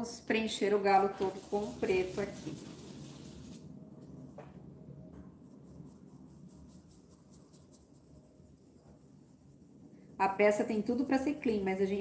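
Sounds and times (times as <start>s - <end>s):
stencil brush dabbing paint: 1.0s - 3.7s, 5.3s - 12.0s.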